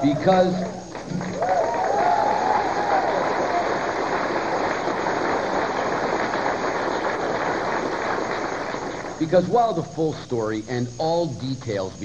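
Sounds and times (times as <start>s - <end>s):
cheering: 0.0s - 9.1s
audience clapping: 0.0s - 9.8s.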